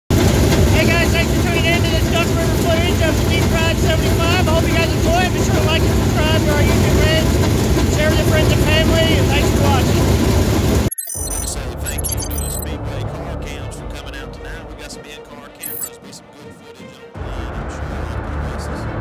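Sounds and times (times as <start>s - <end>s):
race car engines idling: 0.4s - 10.2s
man talking: 0.7s - 7.3s, 7.9s - 10.0s, 11.3s - 19.0s.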